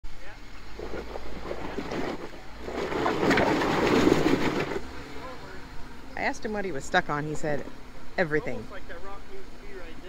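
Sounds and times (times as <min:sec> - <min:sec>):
tires crawling over wet rocks: 0:00.4 - 0:06.4
car engine running: 0:00.6 - 0:10.0
voices in background: 0:04.9 - 0:10.0.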